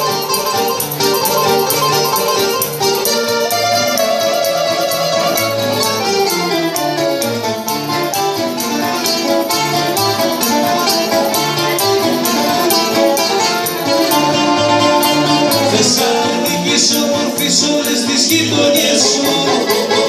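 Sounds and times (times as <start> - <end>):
accordion: 0.0 - 20.0
bouzouki: 0.0 - 20.0
guitar: 0.0 - 20.0
low bass notes: 9.2 - 19.5.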